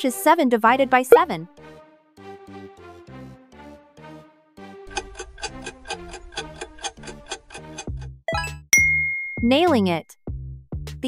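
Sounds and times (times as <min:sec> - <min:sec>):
clock-like ticking: 0:04.9 - 0:08.1.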